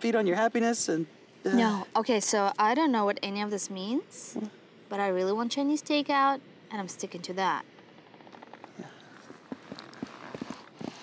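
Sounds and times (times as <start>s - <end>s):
low hiss: 0.0s - 11.0s.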